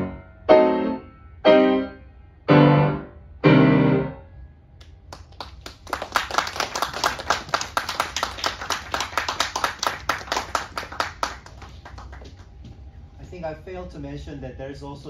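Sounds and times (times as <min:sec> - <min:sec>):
small audience clapping: 0:04.8 - 0:12.7.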